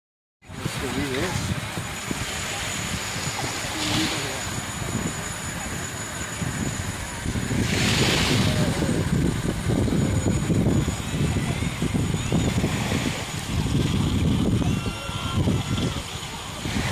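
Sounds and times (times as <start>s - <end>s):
faint distant voices: 0.4s - 16.9s
wind buffeting microphone: 0.4s - 16.9s.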